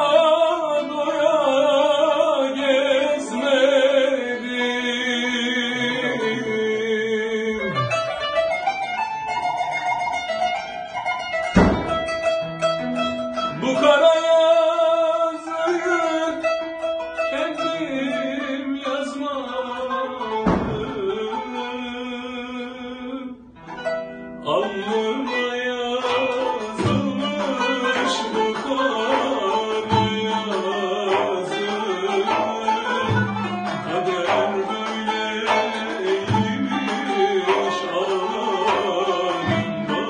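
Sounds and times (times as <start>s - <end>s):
man singing wavering notes: 0.0s - 8.2s
plucked zither melody: 0.0s - 40.0s.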